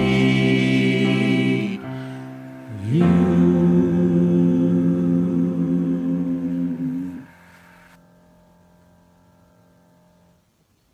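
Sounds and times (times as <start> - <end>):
singers holding a chord: 0.0 - 7.6.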